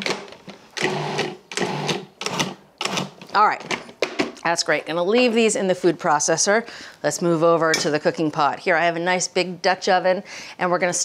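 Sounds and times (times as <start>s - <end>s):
food processor motor whirring: 0.8s - 3.1s.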